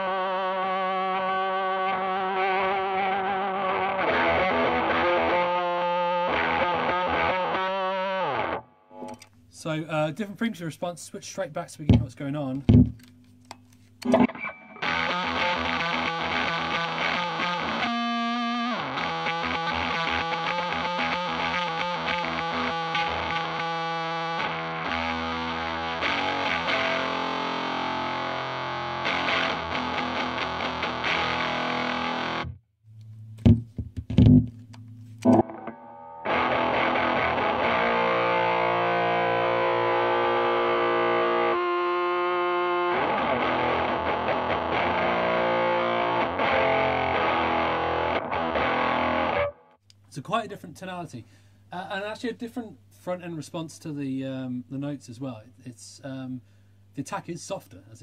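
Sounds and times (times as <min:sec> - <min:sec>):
distorted electric guitar: 0:00.0 - 0:09.3, 0:14.0 - 0:32.6, 0:33.2 - 0:49.8.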